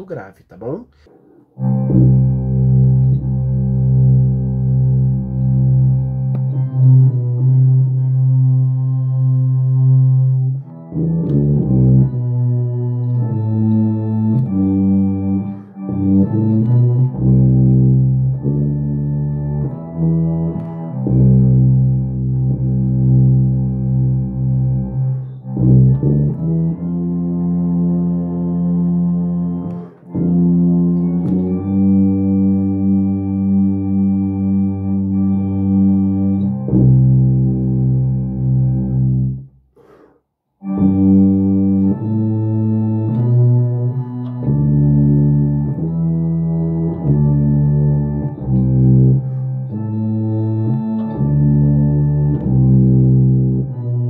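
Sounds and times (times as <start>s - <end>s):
tuba playing slow hymn: 1.5s - 39.5s, 40.6s - 54.0s.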